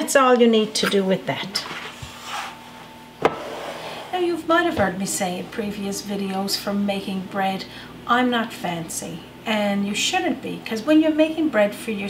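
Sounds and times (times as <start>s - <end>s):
plastic bowl sliding on stone: 3.2s - 4.2s.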